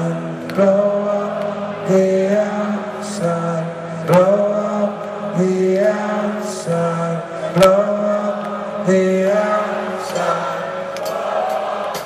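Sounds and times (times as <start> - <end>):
man singing long notes: 0.0 - 12.0.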